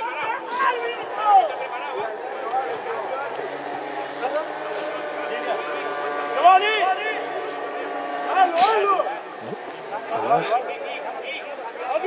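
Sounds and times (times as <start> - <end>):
voices calling out and chattering: 0.0 - 12.0.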